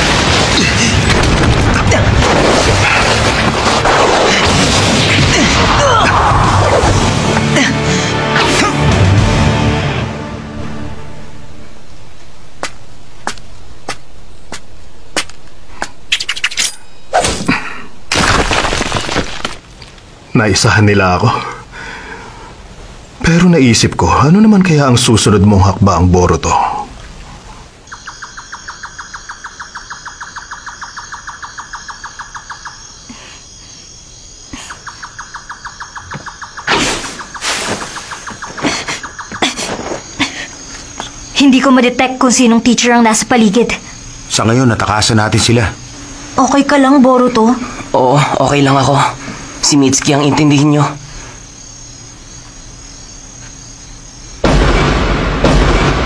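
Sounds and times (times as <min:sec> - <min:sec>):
steady high buzz: 0:09.1 - 0:16.1, 0:27.9 - 0:56.0
crickets chirping: 0:10.2 - 0:56.0.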